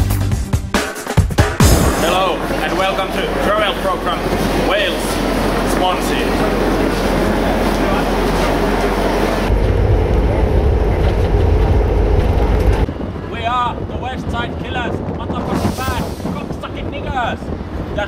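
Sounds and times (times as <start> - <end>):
echoing crowd hubbub: 1.7 - 11.7
wind rumbling on microphone: 6.2 - 18.0.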